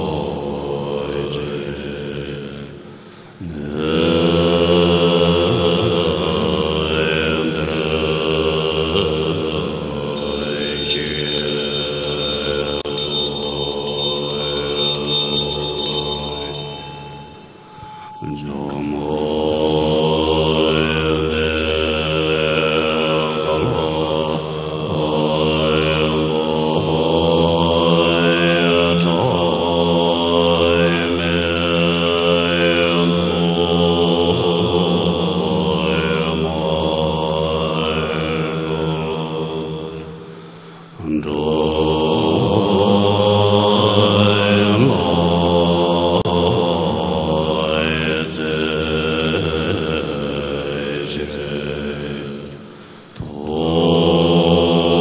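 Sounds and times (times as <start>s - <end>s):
monks chanting in drone: 0.0s - 55.0s.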